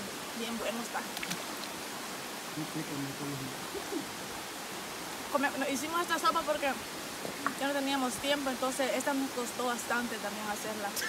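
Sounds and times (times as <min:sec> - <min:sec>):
river flowing over rocks: 0:00.0 - 0:02.6, 0:03.4 - 0:11.0
low voice talking faintly: 0:02.6 - 0:04.1.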